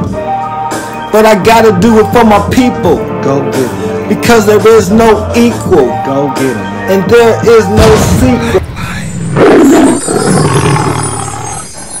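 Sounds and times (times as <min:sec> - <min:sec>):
lion roar: 0:09.2 - 0:12.0.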